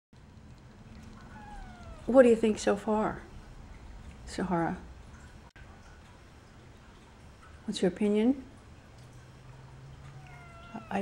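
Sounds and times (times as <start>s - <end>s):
low room hum: 0.2s - 11.0s
cat meowing: 1.2s - 2.2s, 10.1s - 11.0s.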